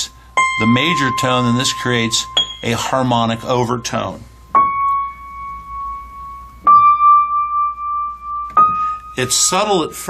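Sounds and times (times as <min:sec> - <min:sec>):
piano treble notes ringing: 0:00.0 - 0:10.0.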